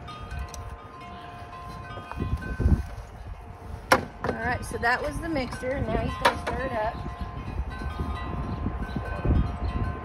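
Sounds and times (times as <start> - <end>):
wind chimes ringing: 0.0 - 10.0
wind gusts on microphone: 1.5 - 10.0.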